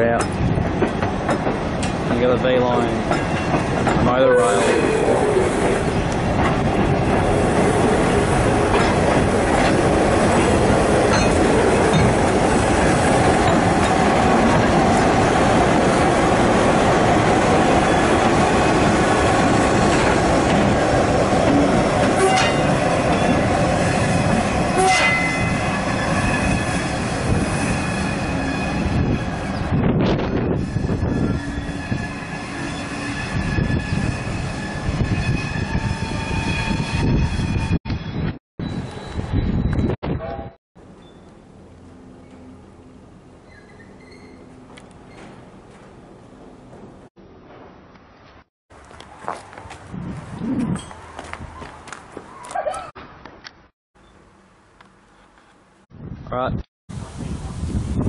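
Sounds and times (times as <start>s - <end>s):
train wheels on rails: 0.0s - 37.6s
wheel squeal: 43.4s - 45.4s.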